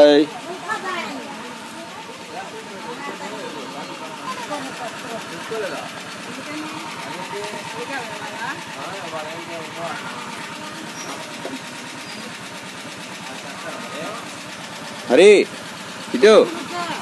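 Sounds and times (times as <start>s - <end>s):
auto-rickshaw engine idling: 0.0s - 17.0s
voices talking faintly: 0.0s - 17.0s.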